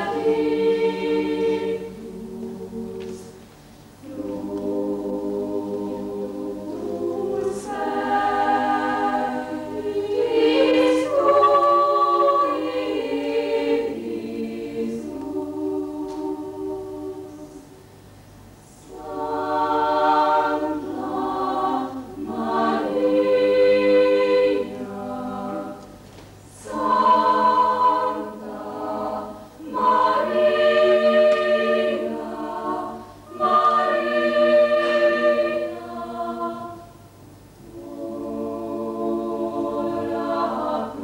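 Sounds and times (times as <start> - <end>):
choir singing unaccompanied: 0.0 - 17.8, 18.7 - 41.0.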